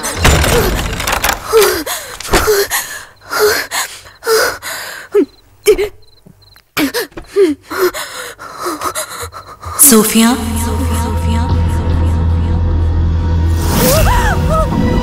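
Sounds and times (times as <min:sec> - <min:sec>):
woman gasping and panting: 0:06.8 - 0:09.8.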